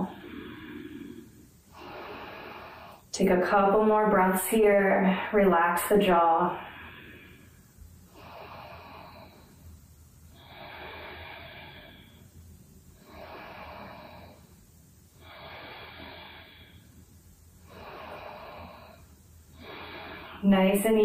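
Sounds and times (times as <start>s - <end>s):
woman breathing slowly: 0.0s - 3.1s, 6.6s - 20.8s.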